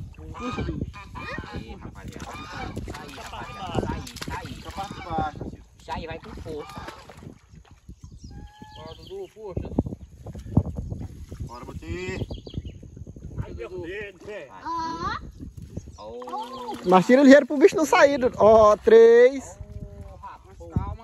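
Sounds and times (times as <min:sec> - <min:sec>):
geese honking: 0:02.3 - 0:04.0.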